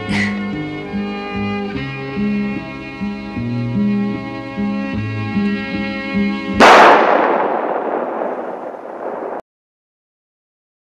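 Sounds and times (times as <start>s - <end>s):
music: 0.0s - 6.6s.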